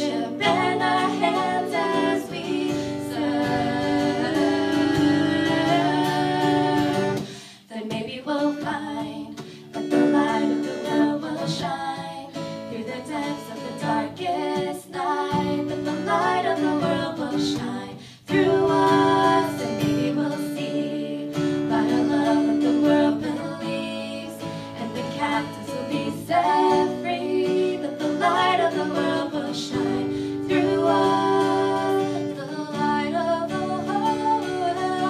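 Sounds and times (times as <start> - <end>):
acoustic guitar strummed and picked: 0.0 - 35.0
woman singing: 0.0 - 35.0.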